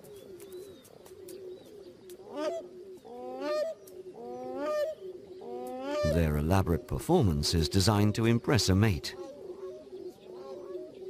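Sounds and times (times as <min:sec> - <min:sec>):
low steady cooing: 0:00.0 - 0:06.8, 0:09.1 - 0:11.0.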